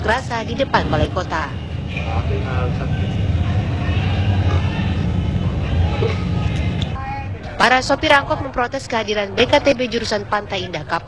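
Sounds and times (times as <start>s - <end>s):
faint voices: 0.0s - 11.0s
street traffic rumble: 0.0s - 11.0s.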